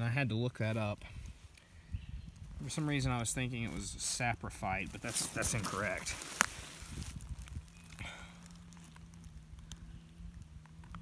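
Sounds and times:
faint low hum: 0.5 - 11.0
footsteps in dry leaves: 2.5 - 10.7.

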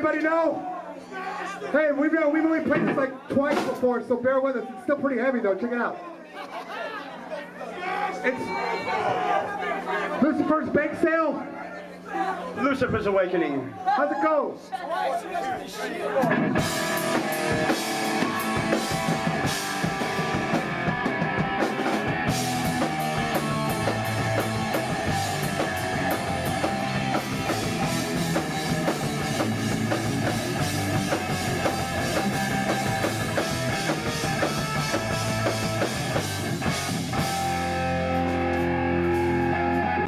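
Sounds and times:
fast drumming: 2.6 - 4.0, 16.2 - 37.7
bass guitar: 16.2 - 40.0
electric guitars: 16.2 - 40.0.

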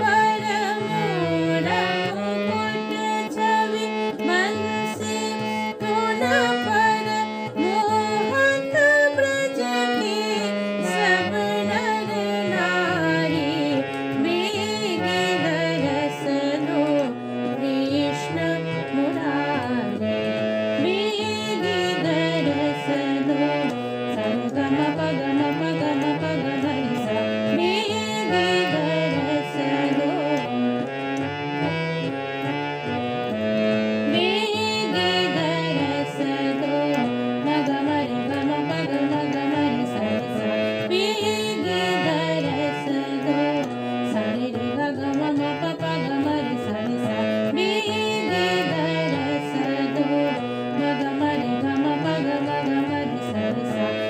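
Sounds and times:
person singing: 0.0 - 32.4, 33.0 - 54.0
harmonium fast runs: 0.0 - 54.0.

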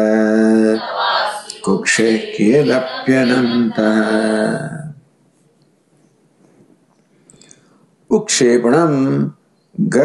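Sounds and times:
man chanting: 0.0 - 5.0.

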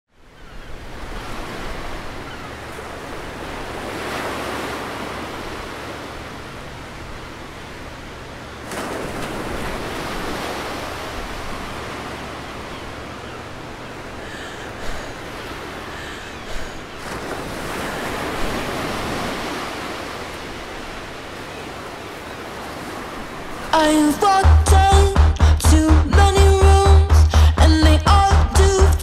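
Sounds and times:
ocean surf washing on beach: 0.4 - 27.5.

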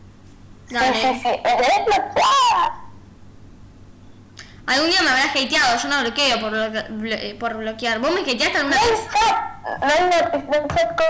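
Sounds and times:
girl laughing: 0.7 - 2.9, 9.1 - 11.0.

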